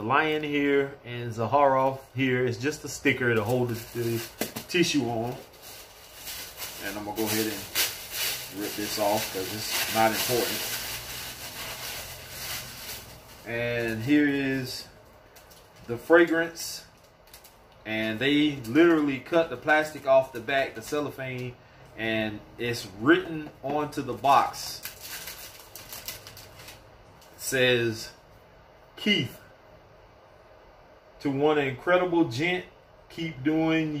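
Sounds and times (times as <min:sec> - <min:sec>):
tissue paper rustling and crumpling: 0:03.0 - 0:14.7, 0:24.6 - 0:26.8.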